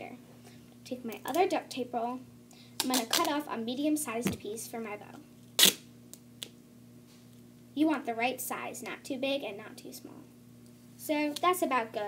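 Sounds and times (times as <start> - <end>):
duct tape ripping off roll: 2.8 - 3.3, 5.5 - 5.9.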